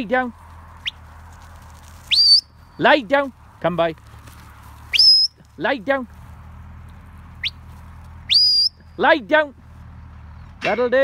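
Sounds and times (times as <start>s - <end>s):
shepherd's whistle commands: 2.1s - 2.6s, 5.0s - 5.4s, 8.3s - 8.9s.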